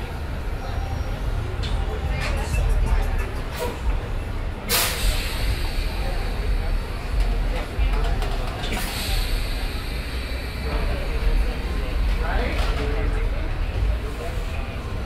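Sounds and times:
bus road rumble: 0.0s - 15.0s.

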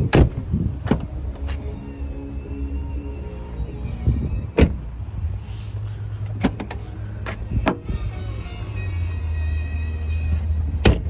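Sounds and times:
tailgate clicks and knocks: 0.0s - 1.1s, 4.5s - 4.8s, 6.4s - 7.8s, 10.8s - 11.0s
car door thumping shut: 0.1s - 1.1s, 4.6s - 4.8s, 10.8s - 11.0s.

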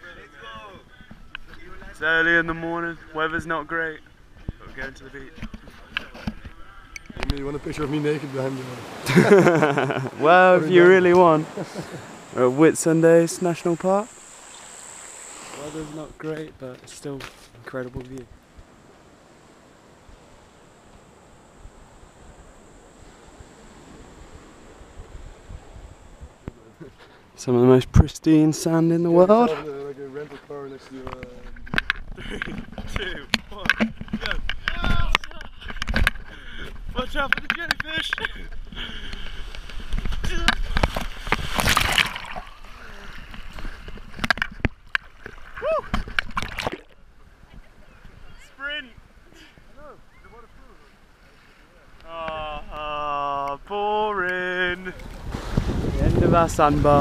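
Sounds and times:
seawater splashing: 7.2s - 16.2s, 39.2s - 47.0s, 54.4s - 57.0s
people laughing: 8.8s - 12.5s, 32.1s - 32.9s
wind buffeting microphone: 18.3s - 26.9s, 54.6s - 57.0s.

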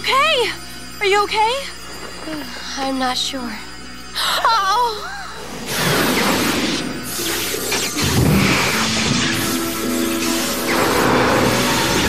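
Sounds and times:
dramatic background music: 4.8s - 12.0s.

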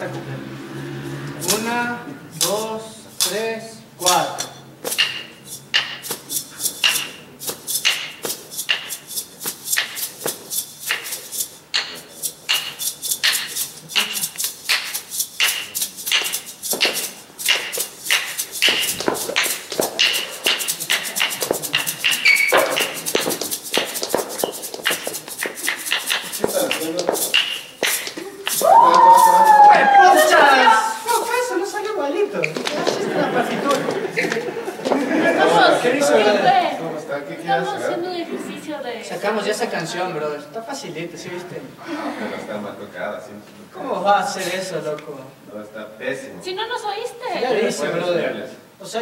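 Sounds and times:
maracas shaking: 0.9s - 36.4s.

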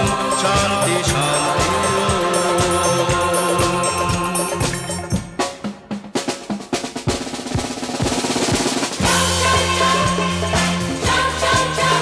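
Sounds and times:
drum fill: 0.0s - 12.0s.

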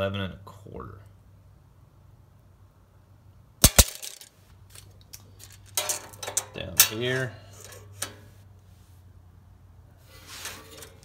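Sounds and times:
metal tape measure clinking: 3.6s - 8.2s.

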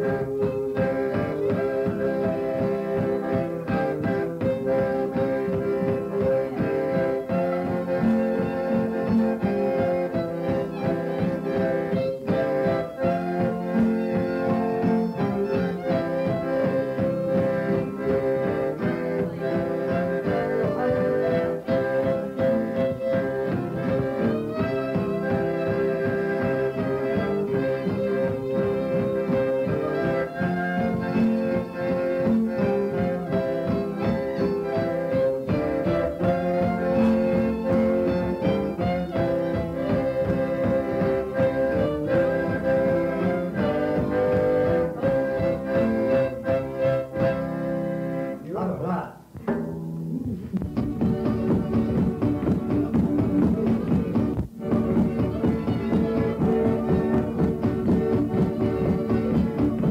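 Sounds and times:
accordion: 0.0s - 59.9s
fiddle playing a tune: 0.0s - 59.9s
guitar: 0.0s - 59.9s.

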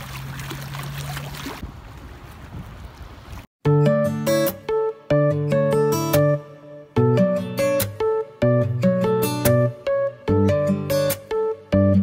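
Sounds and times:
water splashing on rocks: 0.0s - 3.5s
acoustic guitar music: 3.6s - 12.0s.

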